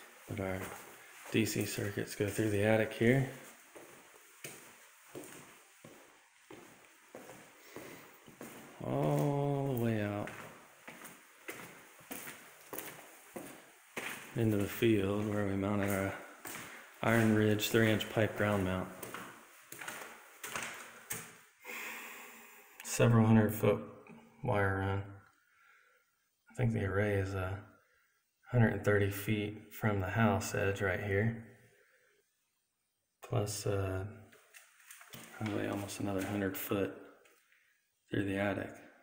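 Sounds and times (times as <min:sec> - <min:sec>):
faint footsteps on paper-covered floor: 0:00.0 - 0:21.5, 0:34.3 - 0:37.6.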